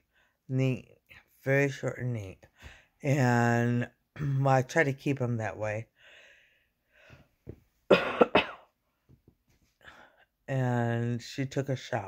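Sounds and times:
faint breath: 0:02.6 - 0:03.0, 0:06.0 - 0:07.4
woman coughing: 0:07.9 - 0:08.7.

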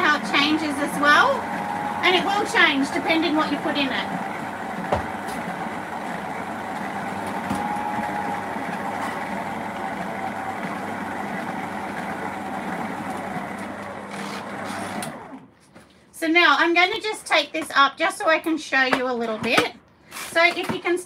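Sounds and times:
stand mixer churning powder: 0:00.0 - 0:15.4.

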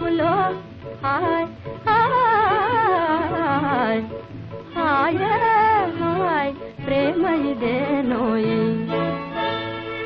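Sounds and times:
woman singing: 0:00.0 - 0:09.0
film song music: 0:00.0 - 0:10.0.

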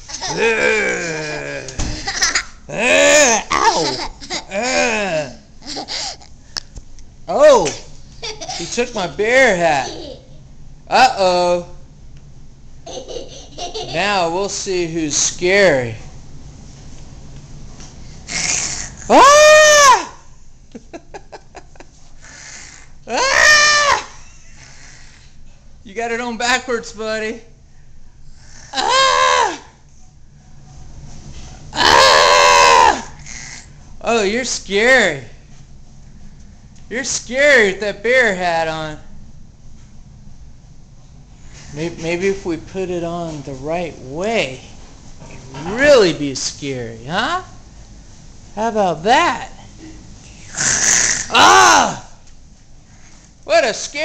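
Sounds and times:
toddler laughing: 0:00.0 - 0:06.3, 0:08.2 - 0:08.8, 0:12.9 - 0:14.1
toddler pretend roaring: 0:00.2 - 0:01.8, 0:02.7 - 0:03.9, 0:31.8 - 0:33.1, 0:50.7 - 0:52.0.

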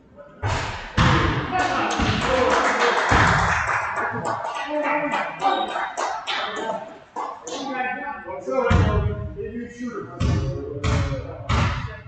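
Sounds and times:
overlapping voices in a gym: 0:00.0 - 0:12.0.

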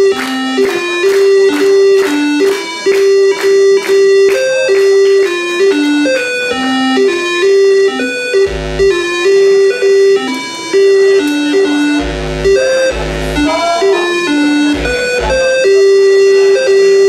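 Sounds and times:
electronic melody: 0:00.0 - 0:17.0.

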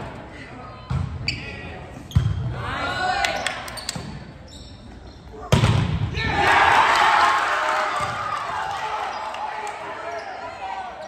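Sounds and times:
volleyball hit thuds: 0:05.5 - 0:06.0
players shouting: 0:06.1 - 0:11.0.

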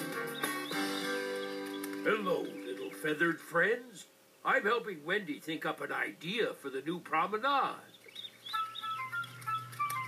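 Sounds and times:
light background music: 0:00.0 - 0:03.0, 0:08.5 - 0:10.0.

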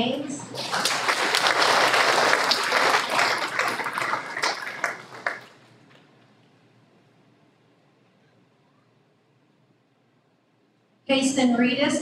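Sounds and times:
audience applauding: 0:00.5 - 0:05.6.

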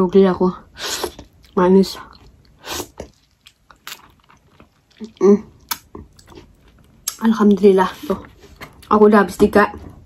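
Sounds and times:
mouth clicks and smacks: 0:02.2 - 0:07.3
wet slurp: 0:02.6 - 0:04.0.

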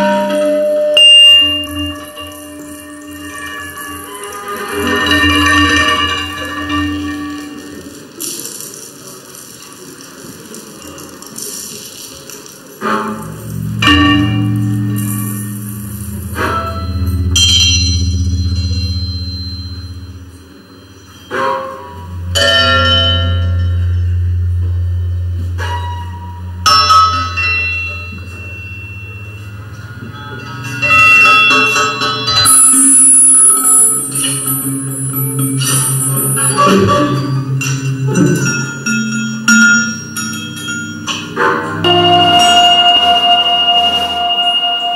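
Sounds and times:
bell-like metallic tones: 0:00.0 - 0:07.8, 0:13.1 - 0:44.9
sustained low drone: 0:12.8 - 0:43.2.

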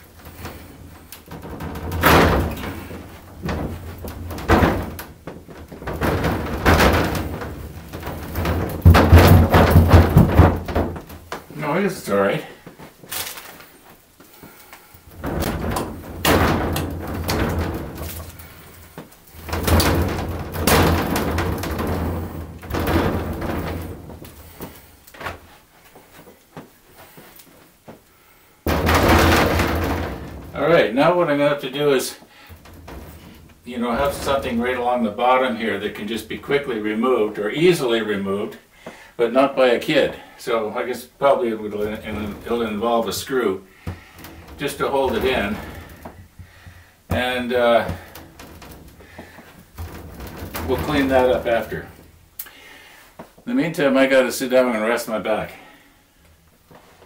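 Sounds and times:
plastic panel scraping in frame: 0:44.0 - 0:46.4.

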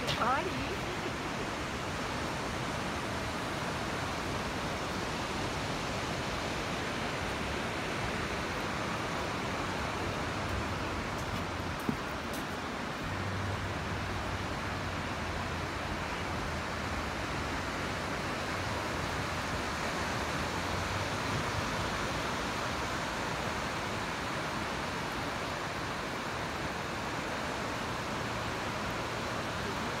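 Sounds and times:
ocean surf breaking on sand: 0:00.0 - 0:30.0.

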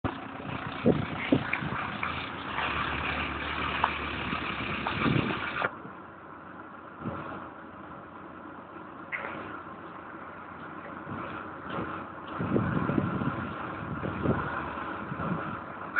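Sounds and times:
car engine running: 0:00.0 - 0:05.7.

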